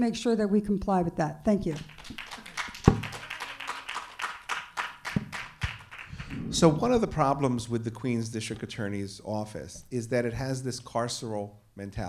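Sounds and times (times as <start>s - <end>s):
audience applause: 1.8s - 6.7s.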